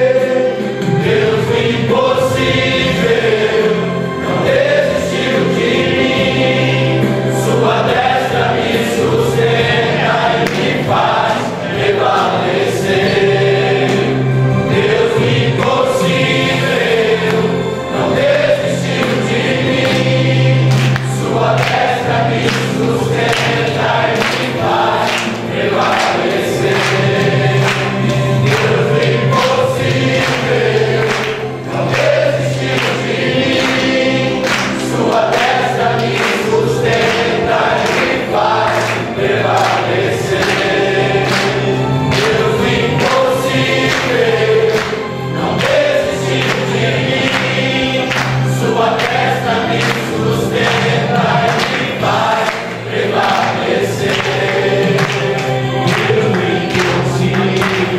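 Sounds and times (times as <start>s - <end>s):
congregation singing gospel song: 0.0s - 57.9s.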